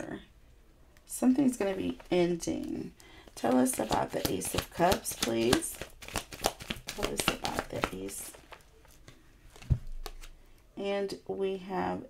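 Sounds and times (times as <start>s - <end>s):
tarot cards being handled: 1.5s - 10.5s
cards rustling: 1.6s - 10.4s.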